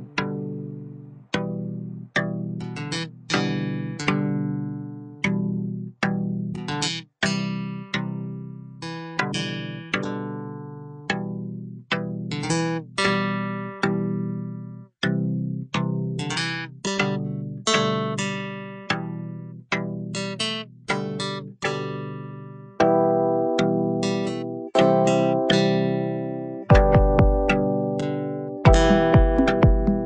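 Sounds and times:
plucked guitar notes: 0:00.0 - 0:30.0.

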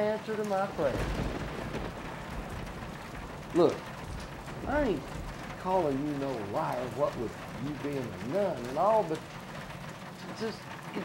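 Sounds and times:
background hiss: 0:00.0 - 0:11.0
low rumble: 0:00.5 - 0:10.1.

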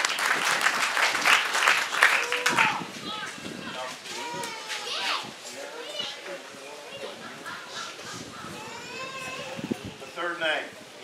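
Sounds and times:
murmur of crowd voices: 0:00.0 - 0:11.0
children's voices: 0:02.1 - 0:10.2.

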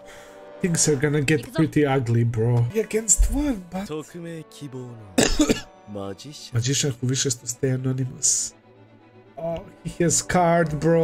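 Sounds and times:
man coughing: 0:05.2 - 0:05.8.

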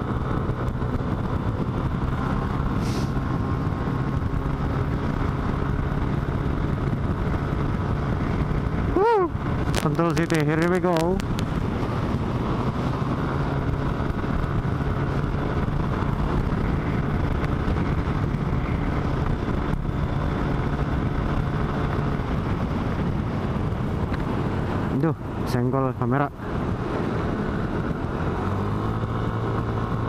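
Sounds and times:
scooter engine running: 0:00.0 - 0:25.4
wind and road noise: 0:00.0 - 0:30.0.

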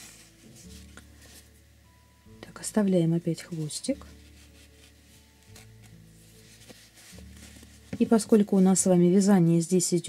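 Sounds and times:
faint rustles of handling: 0:00.0 - 0:01.6, 0:02.7 - 0:09.0.

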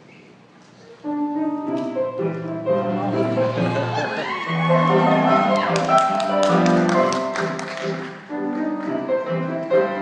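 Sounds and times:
piano playing lively tune: 0:00.8 - 0:10.0.

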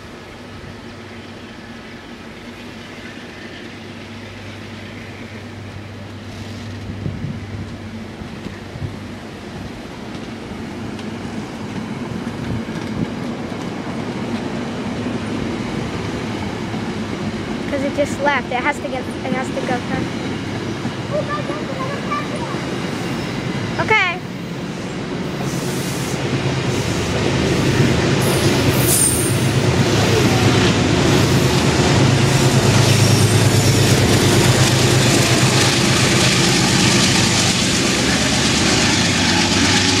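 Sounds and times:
train rumbling past: 0:00.0 - 0:40.0.

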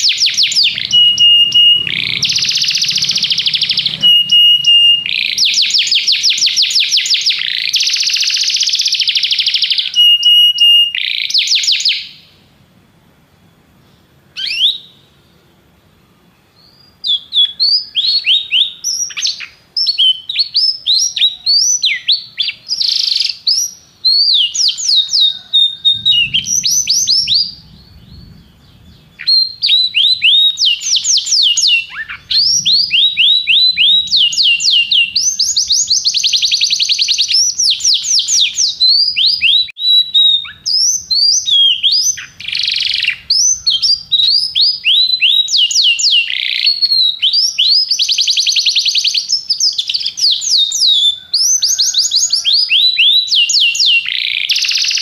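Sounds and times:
canary singing trills: 0:00.0 - 0:12.5, 0:13.4 - 0:55.0.

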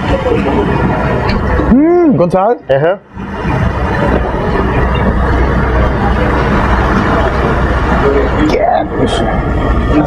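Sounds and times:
dense background noise: 0:00.0 - 0:10.0
steady low rumble: 0:00.0 - 0:10.0.

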